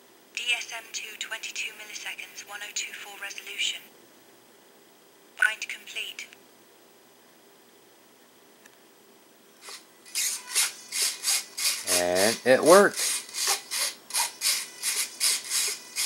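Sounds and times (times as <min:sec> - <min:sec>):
servos buzzing: 0:09.6 - 0:16.0.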